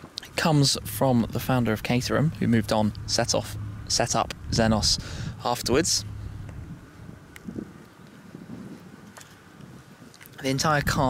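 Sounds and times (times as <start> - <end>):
wind buffeting microphone: 0.0 - 11.0
faint small clicks: 9.0 - 10.4.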